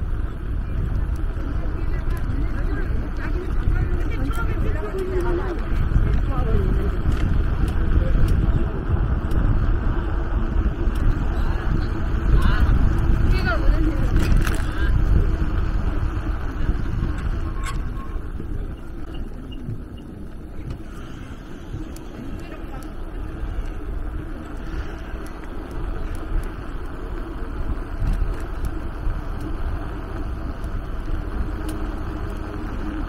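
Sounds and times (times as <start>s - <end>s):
passers-by voices: 0.0s - 33.0s
wind buffeting microphone: 0.0s - 33.0s.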